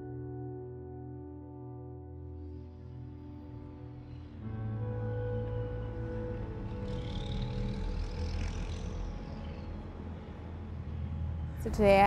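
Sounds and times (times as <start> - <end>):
background music: 0.0 - 12.0
traffic rumble: 4.8 - 12.0
vehicle passing: 5.7 - 12.0.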